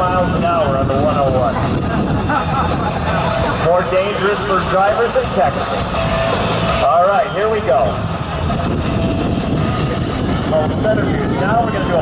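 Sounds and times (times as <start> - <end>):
propeller airplane engine rumble: 0.0 - 12.0.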